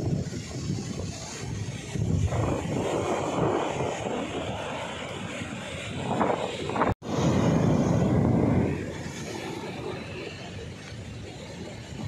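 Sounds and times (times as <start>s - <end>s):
sea surf breaking: 0.0s - 12.0s
wind rumbling on microphone: 0.0s - 12.0s.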